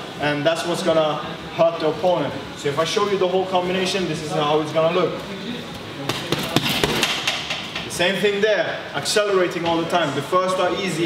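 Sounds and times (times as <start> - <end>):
boxing gloves striking punching bag: 6.1 - 7.5.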